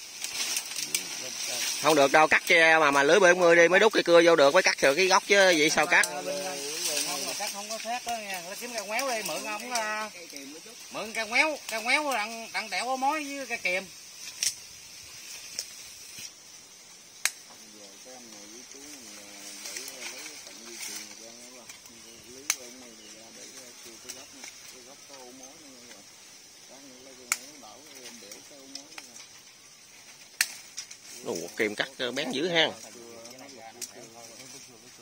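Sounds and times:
insect hiss: 0.0s - 35.0s.

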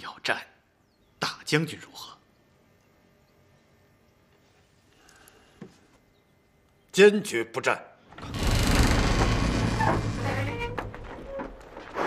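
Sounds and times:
high creak-like tone: 8.1s - 11.6s.

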